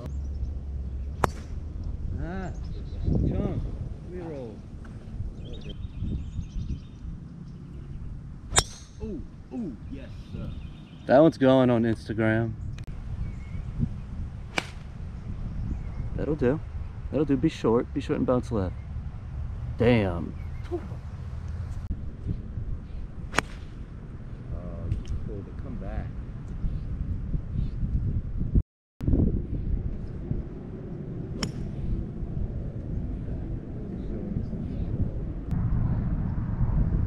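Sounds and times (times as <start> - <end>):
wind rumble on microphone: 0.0 - 37.0
golf club striking ball: 1.2 - 1.9, 8.5 - 9.0, 14.5 - 15.0, 23.3 - 23.8, 31.4 - 31.8.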